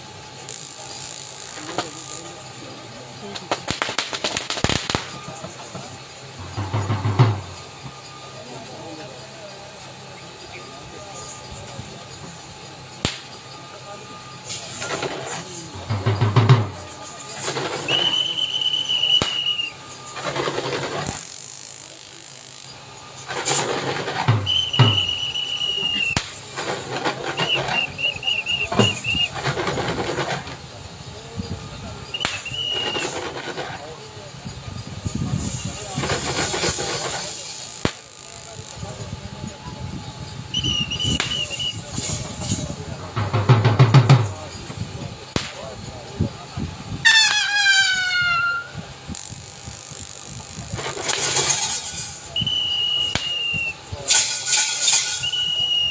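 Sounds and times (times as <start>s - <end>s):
people's voices: 0.5s - 55.9s
whistle blasts: 15.7s - 20.7s, 23.9s - 29.5s, 32.0s - 33.4s, 40.5s - 42.2s, 47.0s - 48.8s, 51.5s - 54.3s, 54.9s - 55.9s.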